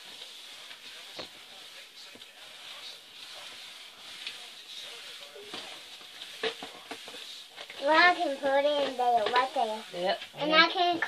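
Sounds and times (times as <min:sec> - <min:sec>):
cloth rag wiping table: 0:00.0 - 0:11.0.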